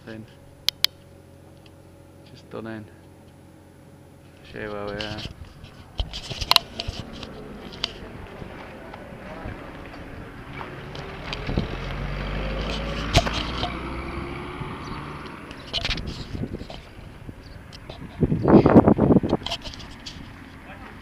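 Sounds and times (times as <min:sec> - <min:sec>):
vehicle engine passing: 0:05.2 - 0:21.0.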